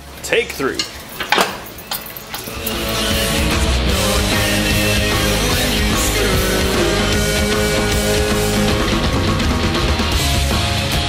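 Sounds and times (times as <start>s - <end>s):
metal clicks and knocks from tools: 0.8s - 2.8s
loud rock music: 2.4s - 11.0s.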